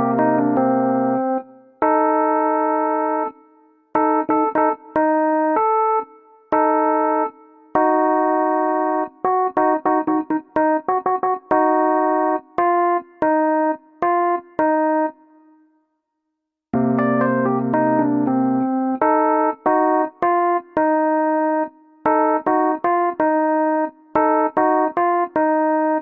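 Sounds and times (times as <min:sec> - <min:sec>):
electronic keyboard cumbia melody: 0:00.0 - 0:15.4, 0:16.8 - 0:26.0.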